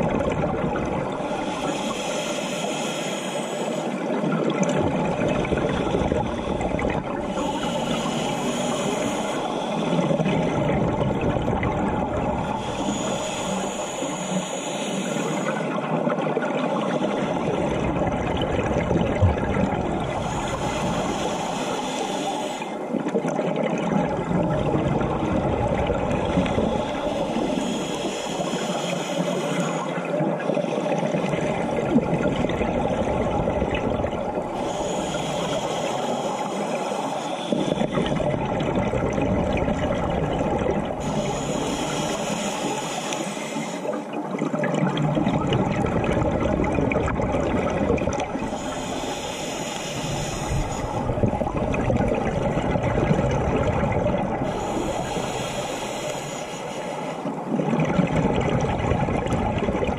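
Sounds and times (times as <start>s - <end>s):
rumble of exhaled bubbles: 0.0s - 1.4s, 4.1s - 13.9s, 15.9s - 21.3s, 23.0s - 27.8s, 30.1s - 35.6s, 37.6s - 42.0s, 44.1s - 49.1s, 50.0s - 55.3s, 57.3s - 59.9s
regulator hiss on inhalation: 1.3s - 4.0s, 7.3s - 10.3s, 12.5s - 15.8s, 20.2s - 22.8s, 26.7s - 31.3s, 34.5s - 38.2s, 41.0s - 44.1s, 48.4s - 51.1s, 54.4s - 57.3s.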